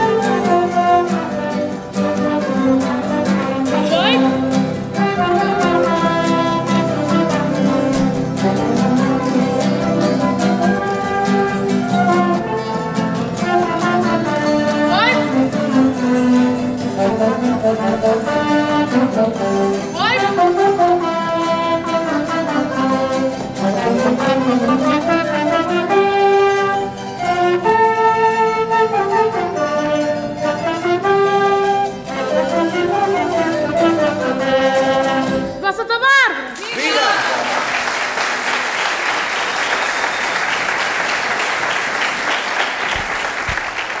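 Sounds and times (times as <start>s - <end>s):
band with horns playing: 0.0s - 36.2s
audience applauding: 36.6s - 44.0s.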